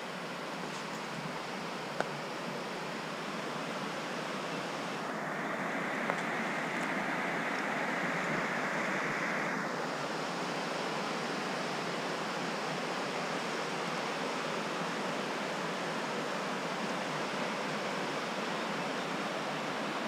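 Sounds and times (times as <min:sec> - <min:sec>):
river rushing over rocks: 0:00.0 - 0:20.0.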